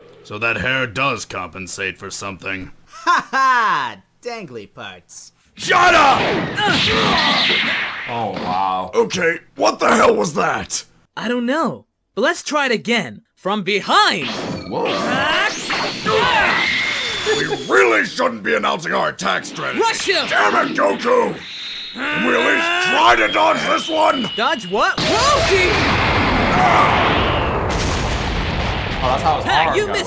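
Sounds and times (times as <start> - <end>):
cartoon hits and crashes: 5.8 - 8.8, 14.2 - 17.8, 22.2 - 29.4.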